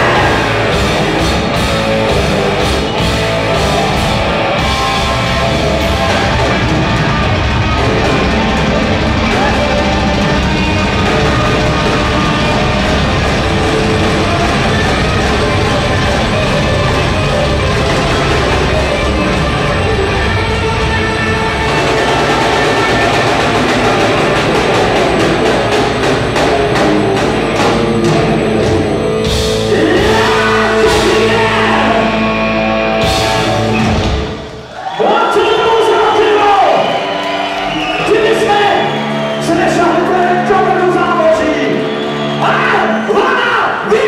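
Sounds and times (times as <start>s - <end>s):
singer singing: 0.0s - 1.2s, 29.6s - 33.6s
live rock band playing: 0.0s - 44.0s
drum hits: 21.4s - 31.7s.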